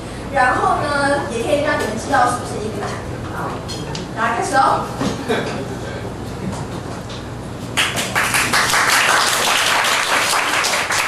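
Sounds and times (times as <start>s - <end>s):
audience applause: 7.8s - 11.0s.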